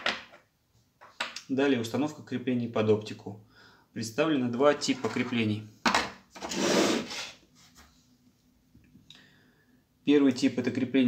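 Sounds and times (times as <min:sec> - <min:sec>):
plastic scraping on tabletop: 0:06.3 - 0:07.4.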